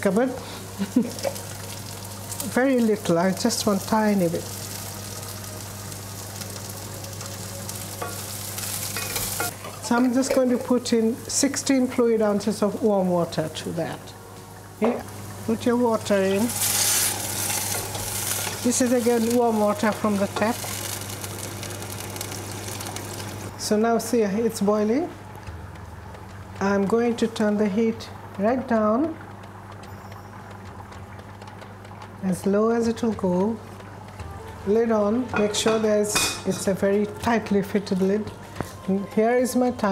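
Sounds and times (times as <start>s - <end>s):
rice and spices sizzling in pan: 0.0s - 23.6s.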